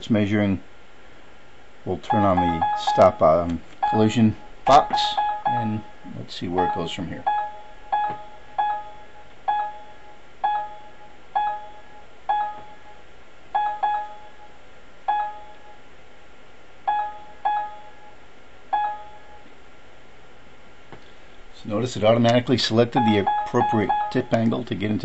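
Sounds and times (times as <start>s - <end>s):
short electronic beeps: 2.1s - 3.2s, 3.8s - 13.0s, 23.0s - 24.4s.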